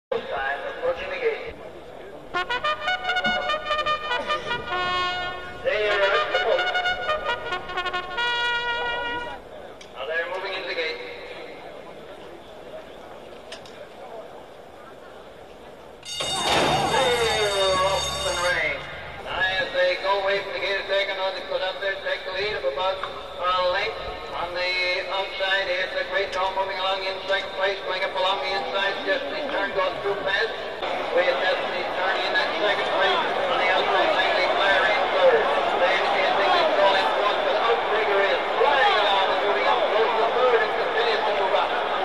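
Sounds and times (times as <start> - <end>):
trumpet call: 2.4 - 9.4, 16.0 - 19.3
voices: 8.7 - 42.0.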